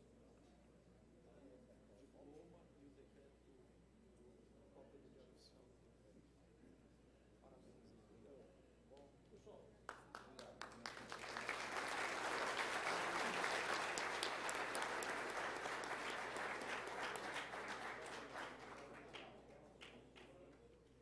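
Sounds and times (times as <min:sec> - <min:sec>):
single claps: 0:09.9 - 0:20.4
audience applause: 0:10.6 - 0:19.3.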